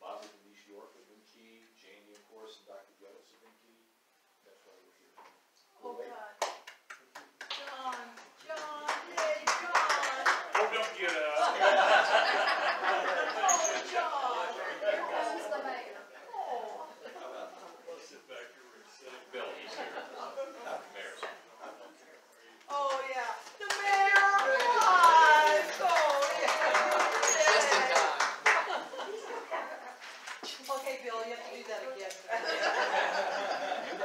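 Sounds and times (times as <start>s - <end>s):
hand claps: 6.4s - 11.3s, 22.8s - 28.8s.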